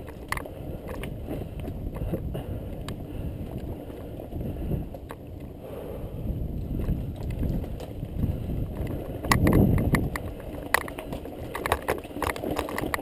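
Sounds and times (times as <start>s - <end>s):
bike rattling: 0.0s - 13.0s
bike tyres rumbling over stones: 0.0s - 13.0s.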